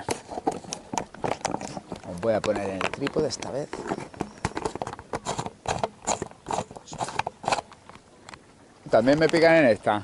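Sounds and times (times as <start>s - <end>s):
camera handling clicks and scrapes: 0.0s - 8.4s.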